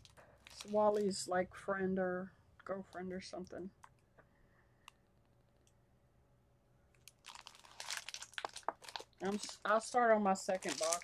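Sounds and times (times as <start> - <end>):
toy packaging crinkling: 0.0 - 1.2, 7.0 - 11.0.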